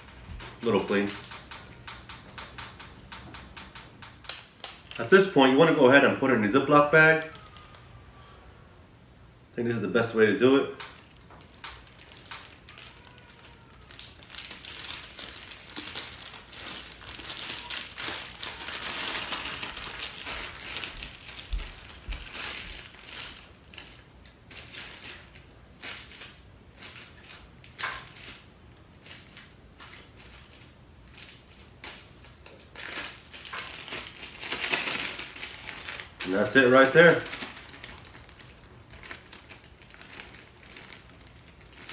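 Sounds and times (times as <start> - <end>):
plastic bag crinkling: 0.0 - 7.9, 10.4 - 41.9.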